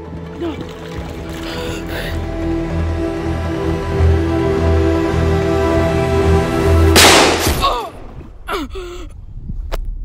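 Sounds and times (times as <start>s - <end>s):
background music with sustained tones: 0.0s - 8.1s.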